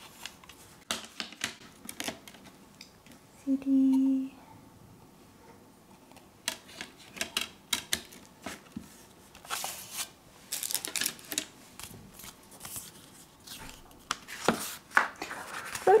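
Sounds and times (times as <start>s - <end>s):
rustling of case and paper booklet: 8.0s - 16.0s.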